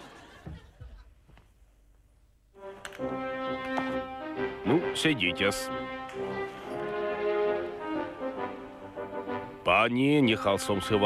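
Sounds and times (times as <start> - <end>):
brass music with held notes: 2.6 - 11.0.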